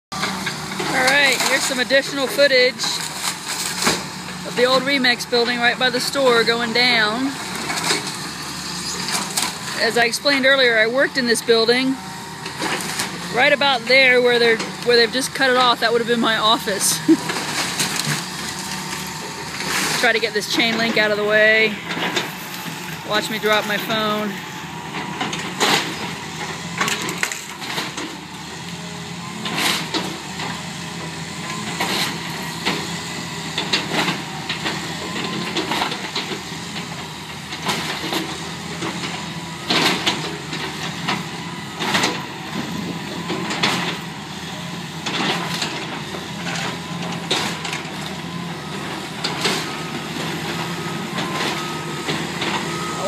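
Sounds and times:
excavator diesel engine running: 0.1 - 53.0.

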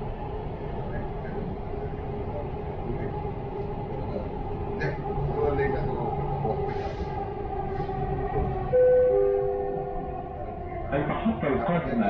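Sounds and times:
train rumbling in a tunnel: 0.0 - 12.0.

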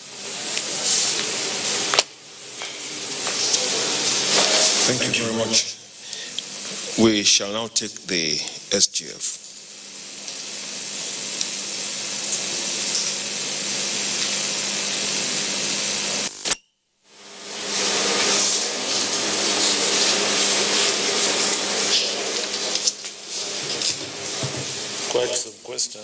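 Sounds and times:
static hiss: 0.0 - 26.0.

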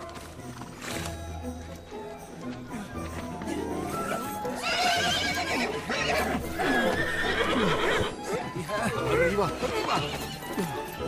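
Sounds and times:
film music: 0.0 - 11.0
horse whinnying: 4.5 - 8.2.

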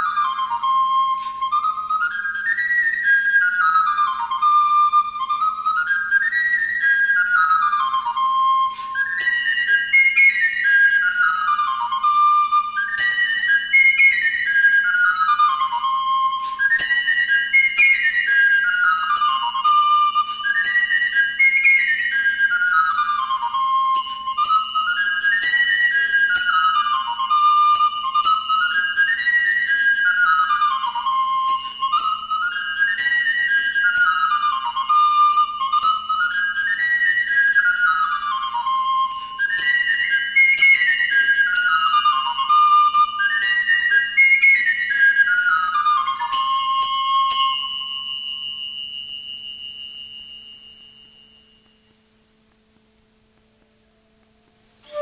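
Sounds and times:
flute playing quick runs: 0.0 - 48.1, 54.8 - 55.0.

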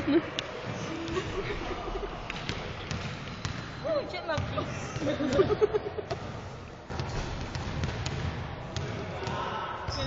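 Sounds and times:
basketballs bouncing on gym floor: 2.3 - 6.3, 6.9 - 10.0.

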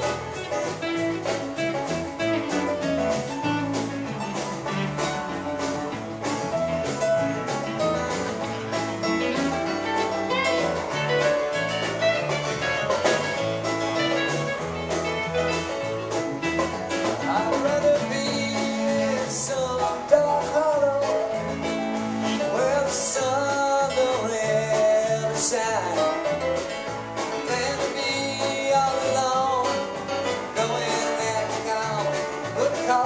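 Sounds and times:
live country-folk band playing: 0.0 - 33.0.

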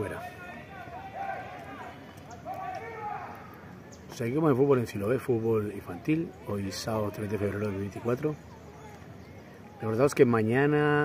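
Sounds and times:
distant children shouting: 0.0 - 3.8, 5.8 - 10.1
faint outdoor background: 0.0 - 11.0.

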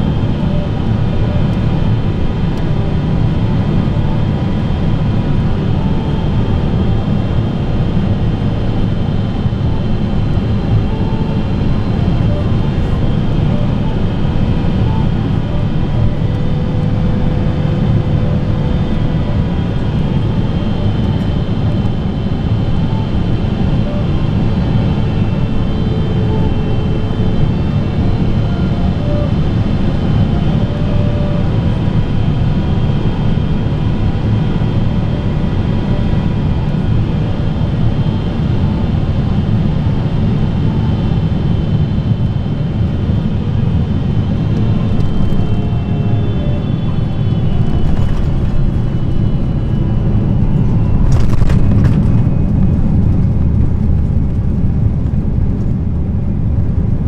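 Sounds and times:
jet engine rumble: 0.0 - 57.0
high whining tones: 43.2 - 53.6.

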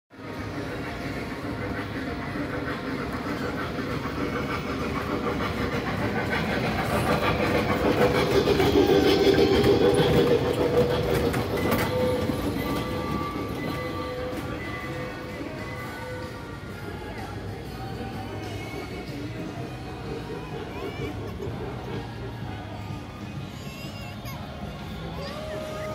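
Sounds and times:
small train driving past: 0.2 - 25.9
music playing: 9.6 - 25.9.

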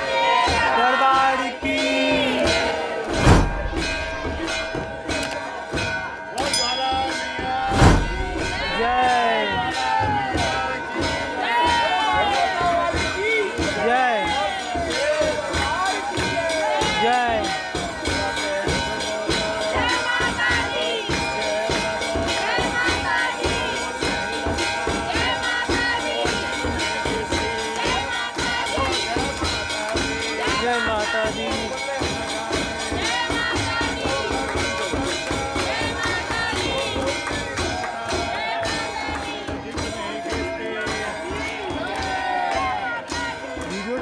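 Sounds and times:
fast steady percussion: 0.0 - 44.0
voices of a large crowd: 0.0 - 44.0
sustained ringing tones: 3.0 - 5.3, 6.0 - 9.4.

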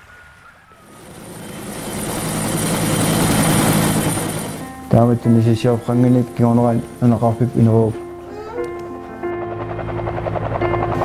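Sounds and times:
helicopter turbine and rotor: 0.8 - 8.2, 9.1 - 11.0.

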